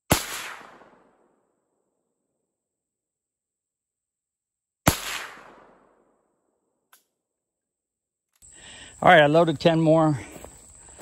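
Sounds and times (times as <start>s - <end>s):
rifle shot echoing: 0.1s - 1.5s, 4.8s - 6.2s.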